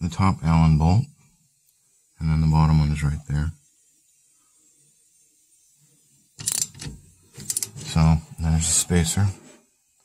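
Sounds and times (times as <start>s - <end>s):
ratchet wrench ratcheting: 6.4s - 7.7s.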